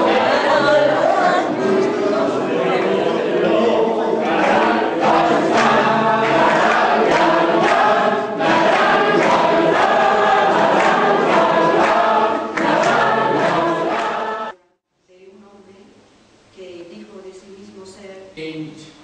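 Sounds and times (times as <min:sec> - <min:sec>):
group of people singing: 0:00.0 - 0:14.6.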